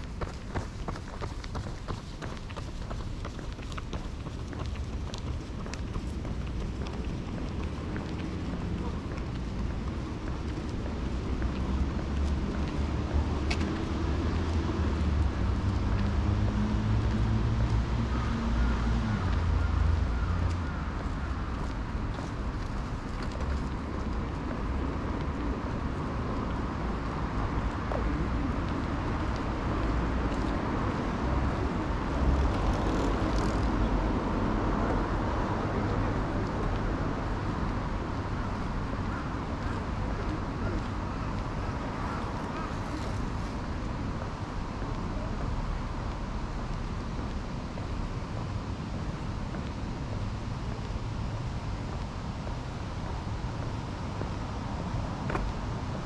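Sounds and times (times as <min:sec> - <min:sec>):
low outdoor rumble: 0:00.0 - 0:56.0.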